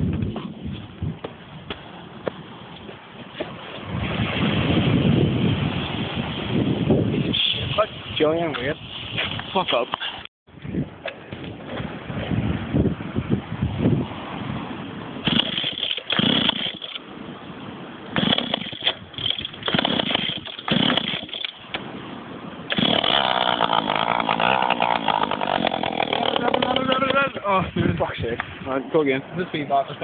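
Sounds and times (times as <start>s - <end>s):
small petrol engine sputtering: 15.3s - 16.9s, 18.2s - 21.5s, 22.7s - 27.2s.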